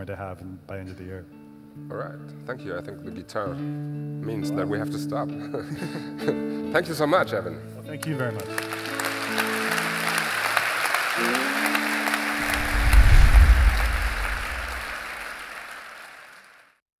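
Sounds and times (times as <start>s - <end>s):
audience applauding: 8.4s - 16.7s
deep boom: 12.4s - 15.2s.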